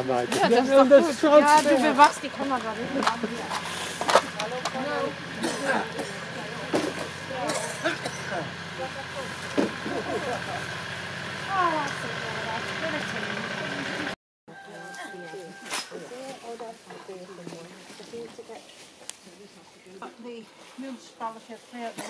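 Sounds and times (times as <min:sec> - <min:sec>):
distant people talking: 0:00.0 - 0:18.3.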